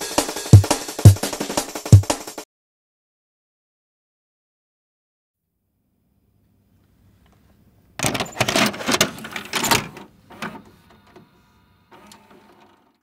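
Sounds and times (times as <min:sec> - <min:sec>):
vcr mechanical clattering: 0:08.0 - 0:11.3, 0:11.9 - 0:13.0
tape mechanism whirring: 0:08.4 - 0:13.0
vcr click: 0:11.9 - 0:12.8.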